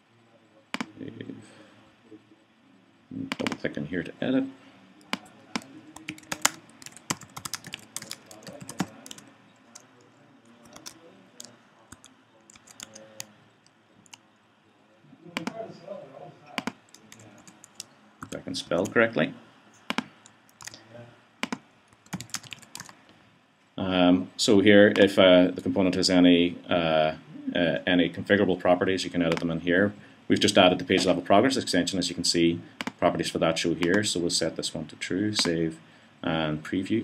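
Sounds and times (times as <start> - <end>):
computer keyboard typing: 5.1 - 9.9, 10.5 - 13.3, 16.6 - 18.9, 19.9 - 20.8, 21.4 - 23.0.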